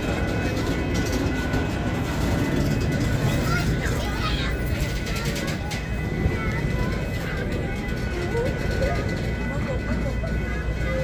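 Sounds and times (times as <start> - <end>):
faint voices of people: 0.0 - 11.0
freight train rumbling past: 0.0 - 11.0.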